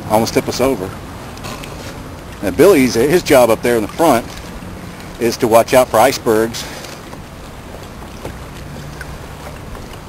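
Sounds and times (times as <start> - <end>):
water moving past kayak: 0.0 - 10.0
wind: 0.0 - 10.0.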